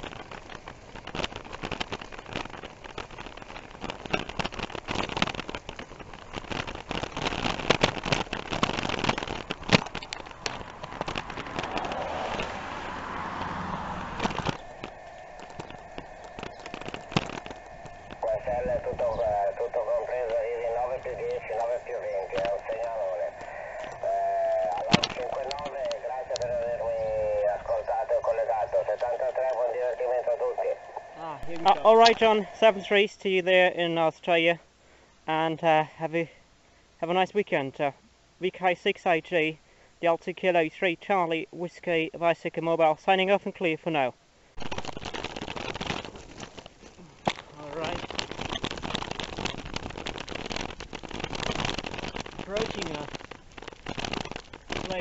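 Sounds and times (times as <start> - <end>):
wind and road rush: 0.0 - 33.0, 44.5 - 55.0
man's voice over radio speaker: 18.1 - 34.6, 37.0 - 44.2, 47.6 - 48.0, 52.4 - 53.2, 54.8 - 55.0.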